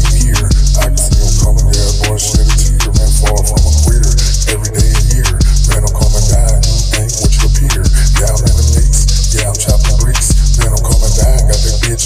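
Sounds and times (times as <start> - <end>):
hip hop beat with deep bass: 0.0 - 12.0.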